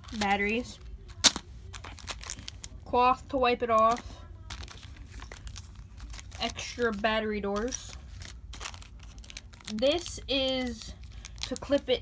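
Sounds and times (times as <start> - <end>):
plastic packaging crinkling: 0.0 - 2.9, 3.8 - 12.0.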